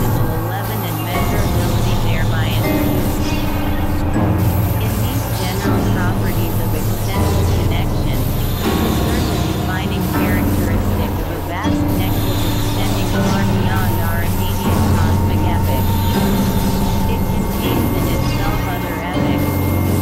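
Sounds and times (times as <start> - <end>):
gliding warbling synth chirps: 0.0 - 20.0
low synthesizer drones: 0.0 - 20.0.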